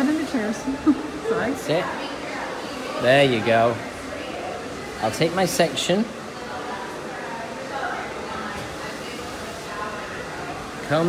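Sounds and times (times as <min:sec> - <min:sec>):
faint voices talking: 0:00.0 - 0:11.0
steady room noise: 0:00.0 - 0:11.0.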